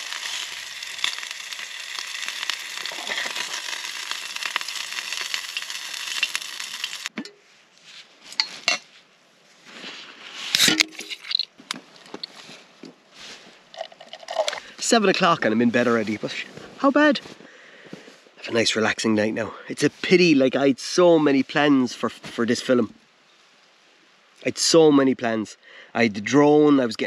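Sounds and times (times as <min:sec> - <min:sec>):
bacon sizzling in a pan: 0:00.0 - 0:07.1
can and metal pot clinking: 0:00.0 - 0:07.4, 0:10.6 - 0:11.5, 0:13.7 - 0:14.7.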